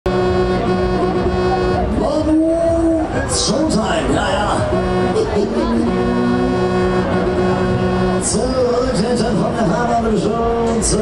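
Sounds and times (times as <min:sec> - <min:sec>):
loud sustained pitched tone: 0:00.1 - 0:11.0
low rumble: 0:00.1 - 0:11.0.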